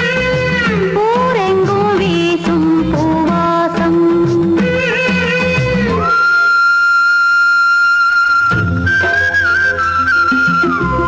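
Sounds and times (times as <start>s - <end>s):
flute holding high note: 5.9s - 11.0s.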